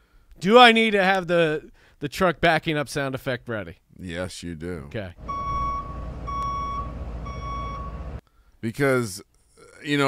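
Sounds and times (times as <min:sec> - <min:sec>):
low engine rumble: 0:05.2 - 0:08.2
reversing alarm beeping: 0:05.2 - 0:08.2.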